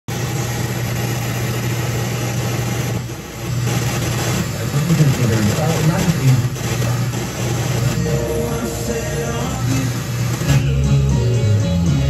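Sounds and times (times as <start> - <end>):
radio static: 3.5 - 10.6
low hum: 7.6 - 10.7.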